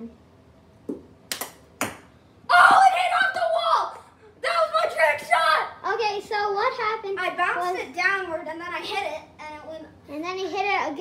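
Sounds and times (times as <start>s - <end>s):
loud excited shouting: 2.5s - 5.8s.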